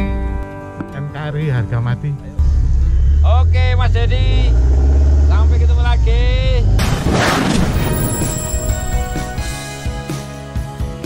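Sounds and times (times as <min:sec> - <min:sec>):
music: 0:00.0 - 0:04.6, 0:07.6 - 0:11.0
deep steady rumble: 0:02.4 - 0:07.0.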